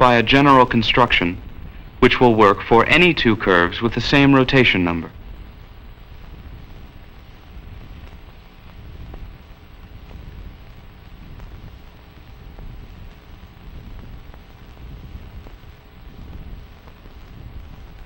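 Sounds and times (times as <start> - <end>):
low rumble and hiss: 0.0 - 18.0.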